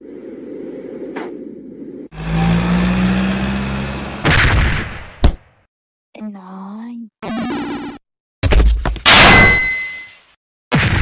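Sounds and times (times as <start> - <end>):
loud metallic clang: 9.1 - 10.1.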